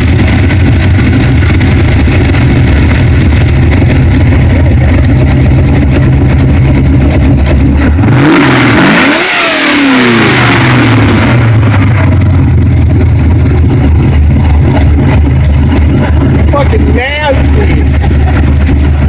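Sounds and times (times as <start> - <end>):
car engine idling and revving: 0.0 - 19.0.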